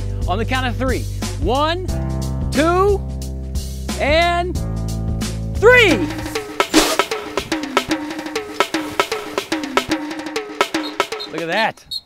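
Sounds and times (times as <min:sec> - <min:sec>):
short pitched notes: 0:05.6 - 0:08.7
snare and bass drum hits: 0:05.7 - 0:11.4.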